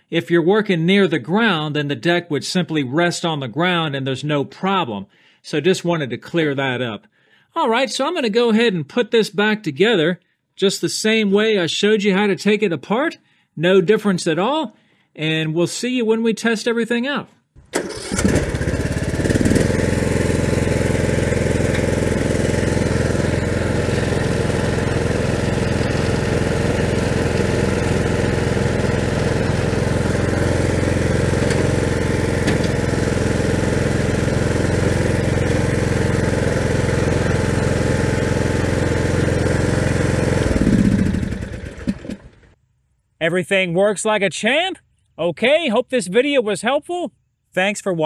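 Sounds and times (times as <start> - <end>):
riding tractor engine running: 17.7 - 42.5
engine winding down: 17.7 - 42.6.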